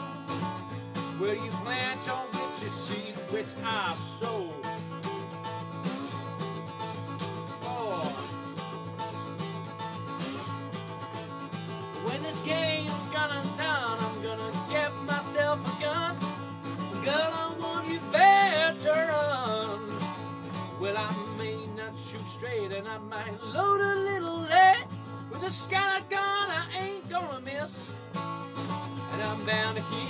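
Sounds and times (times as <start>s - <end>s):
slide acoustic guitar: 0.0s - 30.0s
man singing: 1.0s - 5.0s, 7.5s - 8.4s, 12.0s - 28.0s, 29.0s - 30.0s.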